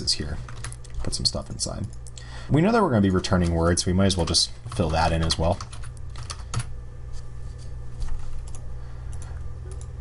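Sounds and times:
keyboard typing: 4.7 - 6.7.

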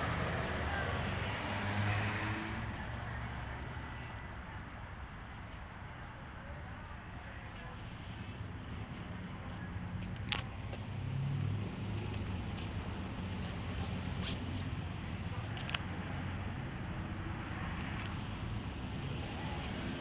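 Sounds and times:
street noise rumble: 0.0 - 20.0.

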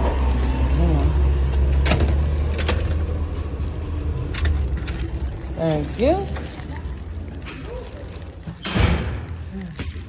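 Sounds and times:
vehicle engine rumbling: 0.0 - 10.0.

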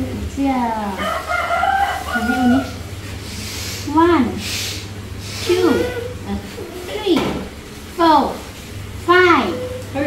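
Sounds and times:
rooster crowing: 0.9 - 2.9.

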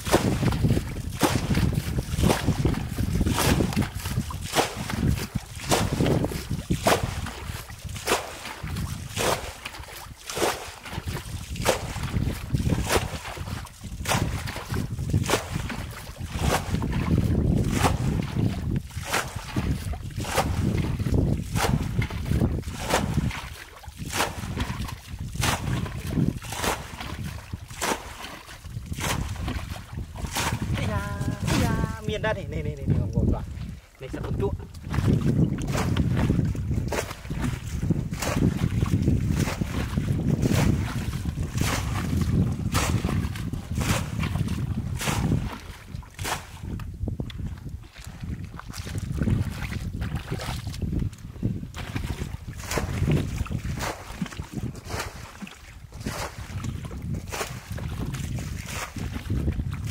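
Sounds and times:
bucket splashing water: 0.0 - 59.9
low water sloshing: 0.0 - 59.9
wind rumble on microphone: 0.0 - 59.9.

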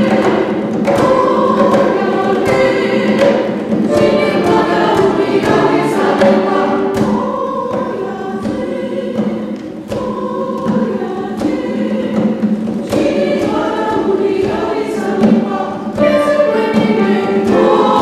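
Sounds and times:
choir singing: 0.0 - 18.0
sharp percussive strikes: 0.0 - 18.0.

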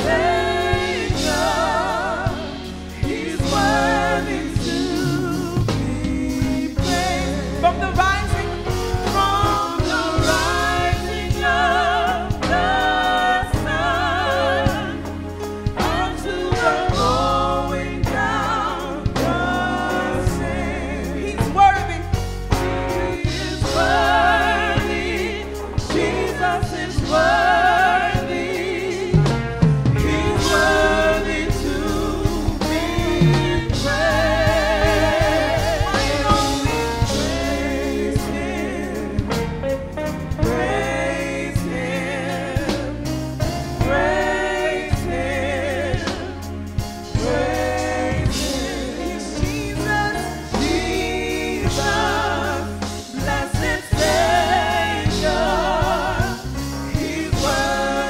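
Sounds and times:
voices singing held notes: 0.0 - 39.4, 40.4 - 58.0
bass guitar: 0.0 - 58.0
drum kit: 0.0 - 58.0
drum hits: 21.5 - 38.5.

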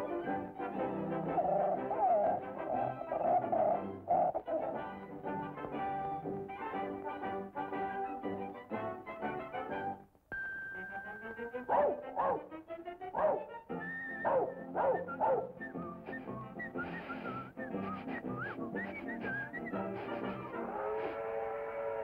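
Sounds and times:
band music: 0.0 - 10.0, 10.8 - 22.0
dog whimpering yelps: 11.7 - 12.5, 13.2 - 13.5, 14.2 - 15.6
high wavering whistled notes: 13.7 - 20.3.

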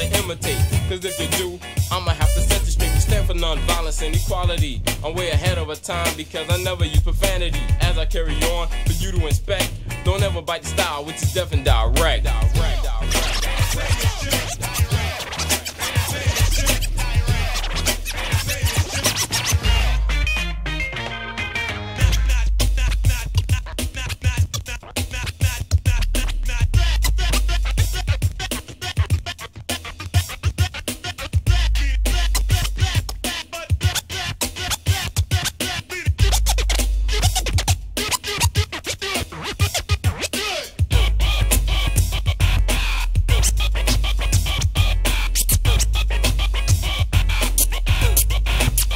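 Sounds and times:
deep bass: 0.0 - 15.5, 16.1 - 20.8, 22.0 - 29.2, 31.3 - 33.4, 36.2 - 38.0, 40.8 - 48.9
drum beat: 0.0 - 20.1, 22.0 - 38.8, 39.6 - 48.9
held pitched notes: 0.0 - 30.6
turntable scratching: 0.0 - 48.9.

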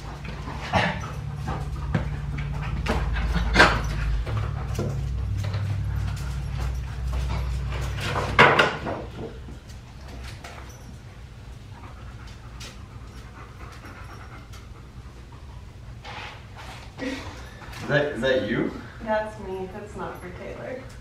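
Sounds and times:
low steady rumble: 0.0 - 21.0.

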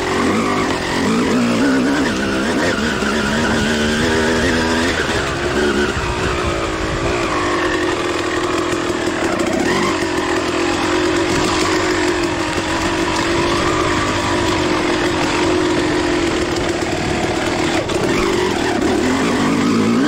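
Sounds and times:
two-stroke dirt bike engine: 0.0 - 20.0.

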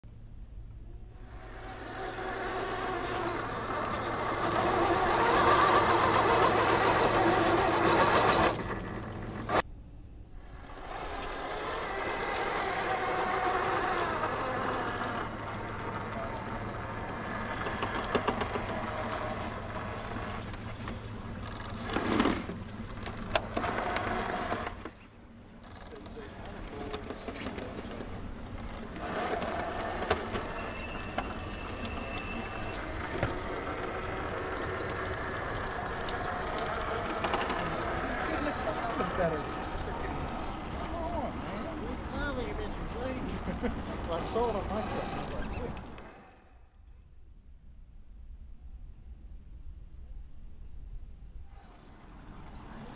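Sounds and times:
rc car motor whining: 1.0 - 9.6, 10.4 - 46.8
people talking: 12.8 - 17.1, 25.8 - 28.3, 35.7 - 45.9.

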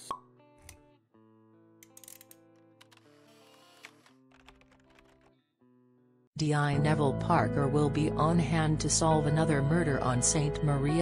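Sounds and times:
background music: 6.4 - 11.0.

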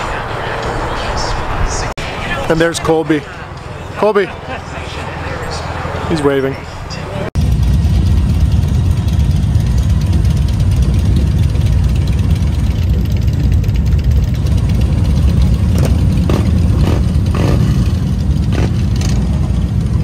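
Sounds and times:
motorcycle engines idling: 0.0 - 20.0.

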